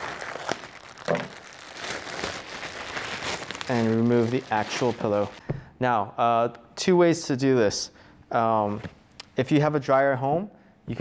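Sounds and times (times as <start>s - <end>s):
plastic bag crinkling: 0.0s - 5.4s.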